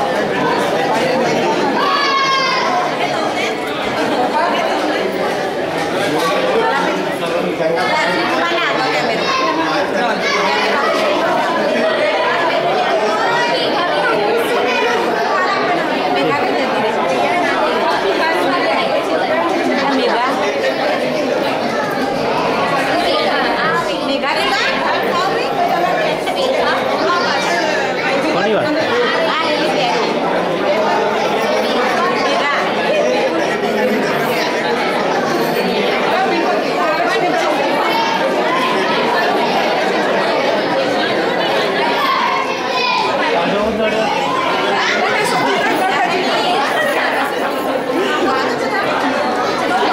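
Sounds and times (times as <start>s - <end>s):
crowd chatter: 0.0s - 49.9s.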